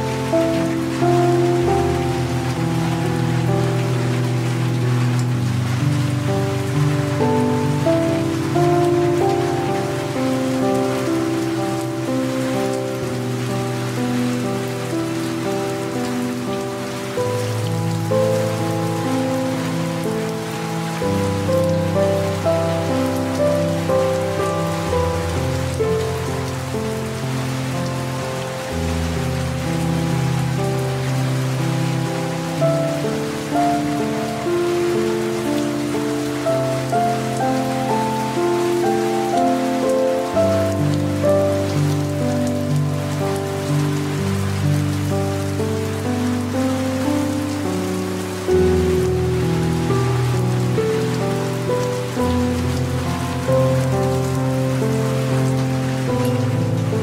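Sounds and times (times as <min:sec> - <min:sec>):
light rain hiss: 0:00.0 - 0:57.0
slow piano music: 0:00.0 - 0:57.0.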